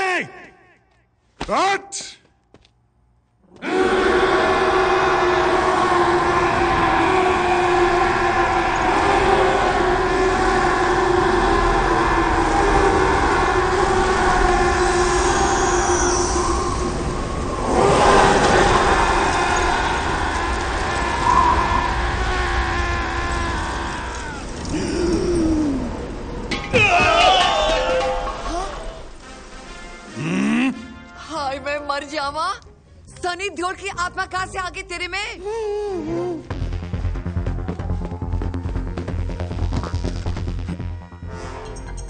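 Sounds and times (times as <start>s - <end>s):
layered drone soundtrack: 4.9s - 31.1s.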